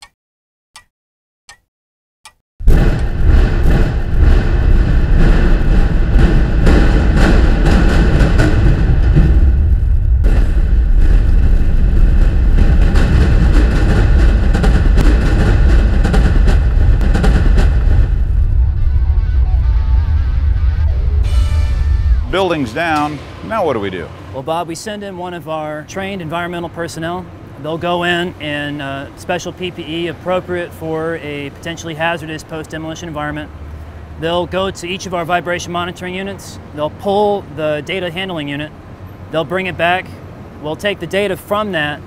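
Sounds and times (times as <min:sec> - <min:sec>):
sharp cracks: 0:02.6 - 0:09.4
building demolition explosion rumble: 0:02.6 - 0:25.7.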